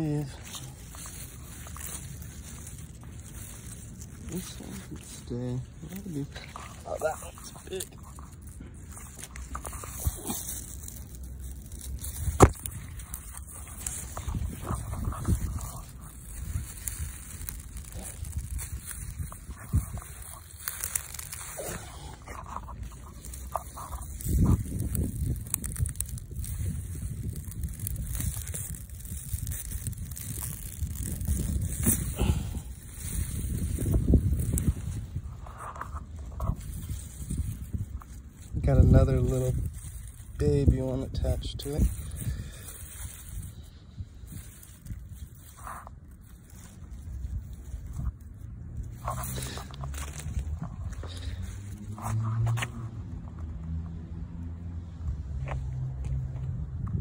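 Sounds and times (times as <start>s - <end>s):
crackly rustling of stiff leaves: 0.0s - 57.0s
scraping of dirt: 0.0s - 57.0s.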